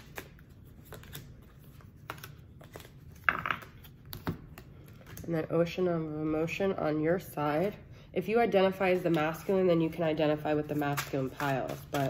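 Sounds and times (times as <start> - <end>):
cards rustling: 0.0 - 5.3, 10.4 - 12.0.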